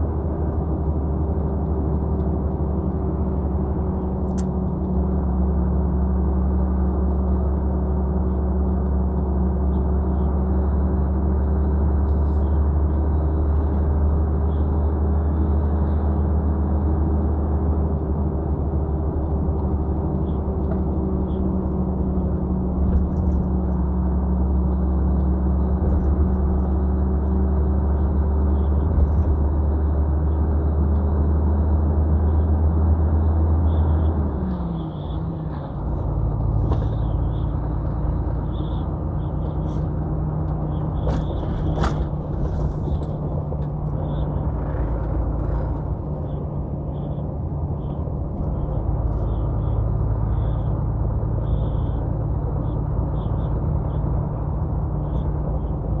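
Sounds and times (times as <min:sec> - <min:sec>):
road noise: 0:00.0 - 0:56.0
truck diesel engine drone: 0:00.0 - 0:56.0.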